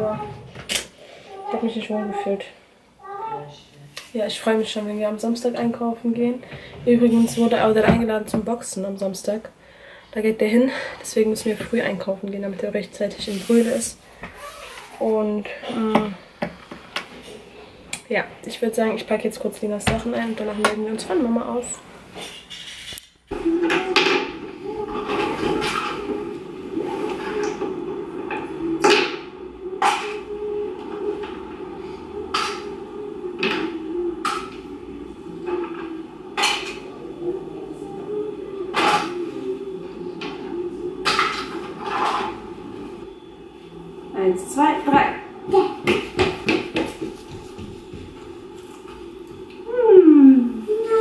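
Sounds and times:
person singing falling ooh: 23.3 - 42.5
low background murmur: 23.3 - 51.0
hard objects knocking: 44.9 - 48.3.

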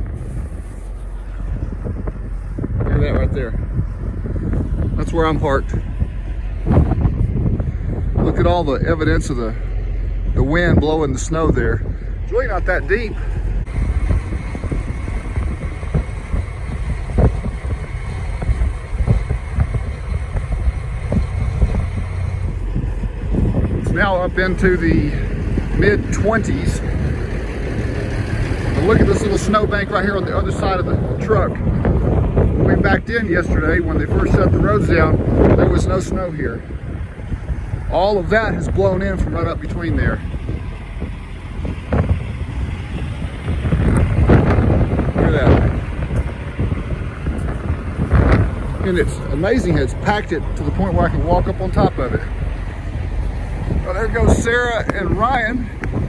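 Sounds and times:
wind gusting against microphone: 0.0 - 56.0.

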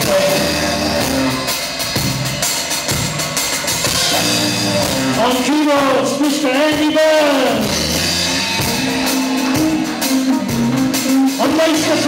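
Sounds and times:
drum kit: 0.0 - 12.0
live rock band: 0.0 - 12.0.

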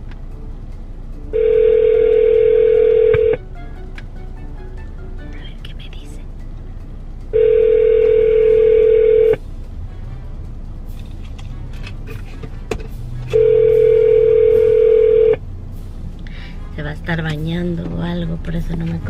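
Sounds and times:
telephone ringback tone: 1.4 - 3.4, 7.4 - 9.4, 13.3 - 15.4.

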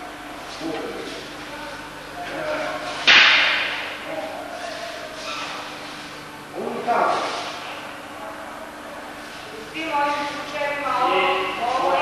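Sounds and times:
wooden weapons striking together: 3.0 - 3.9.

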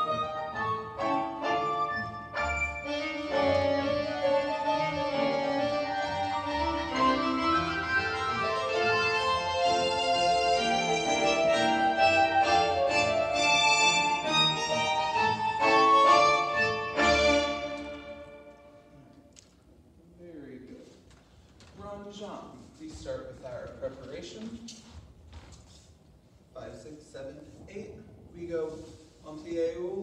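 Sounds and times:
instrumental ballet music: 0.0 - 19.4.

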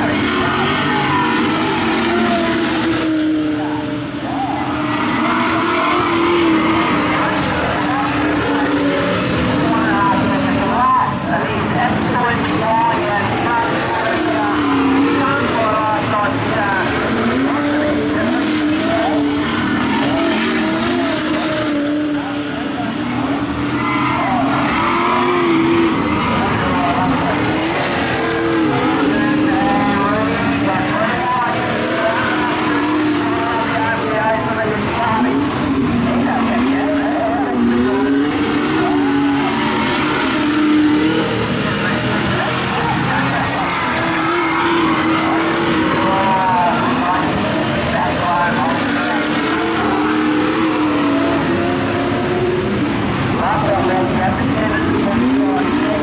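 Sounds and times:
race car engines racing: 0.0 - 56.0.

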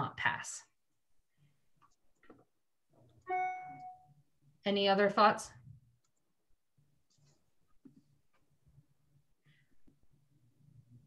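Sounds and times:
chime-like tone: 3.3 - 4.1.

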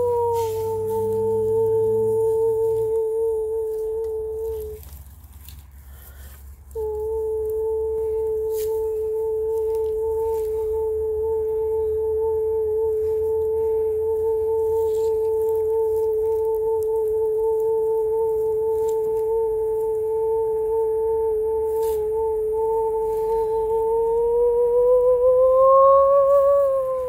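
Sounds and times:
steady pure held tone: 0.0 - 27.0.

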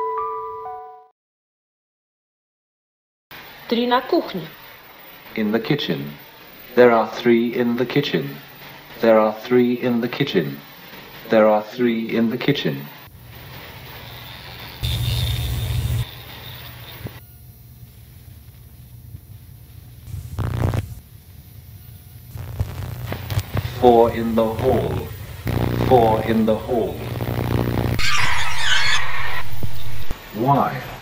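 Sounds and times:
thin high whine: 3.4 - 31.0
videotape hiss: 3.4 - 31.0
harsh distorted noise burst: 12.0 - 17.2, 20.0 - 31.0
loud low buzz: 14.8 - 30.3
low hum: 24.1 - 30.2.

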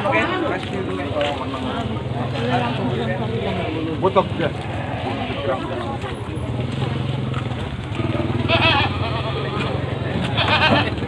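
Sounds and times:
crowd chatter: 0.0 - 11.0
vehicle engine humming: 0.0 - 11.0.

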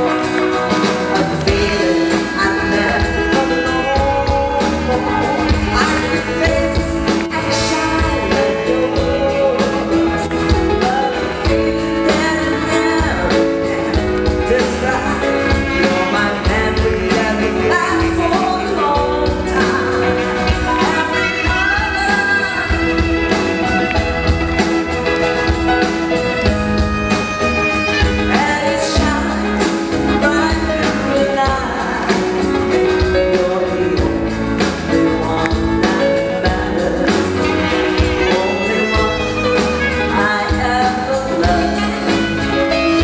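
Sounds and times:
woman singing a pop ballad: 0.0 - 24.0, 28.0 - 43.0
electric guitar: 0.0 - 43.0
steady drum beat: 0.0 - 43.0.

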